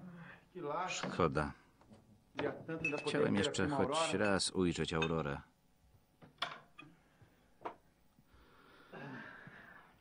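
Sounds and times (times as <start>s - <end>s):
glassware clinking on a table: 2.8s - 3.3s, 5.0s - 5.3s.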